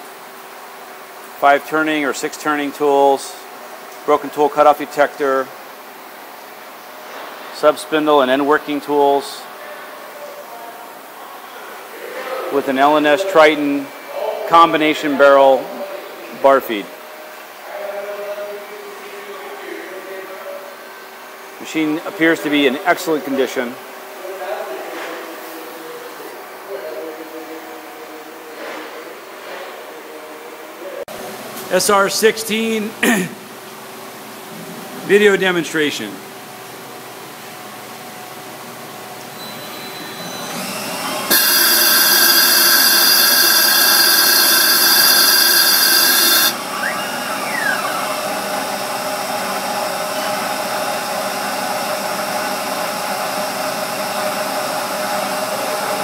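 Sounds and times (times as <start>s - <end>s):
machine hum: 40.0s - 56.0s
lathe high hissing whine: 40.3s - 56.0s.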